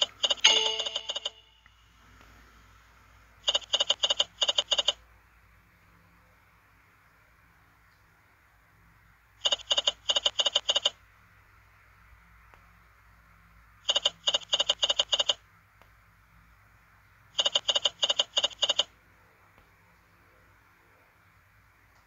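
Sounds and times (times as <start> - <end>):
slot machine reel beeps: 0.2 - 1.6.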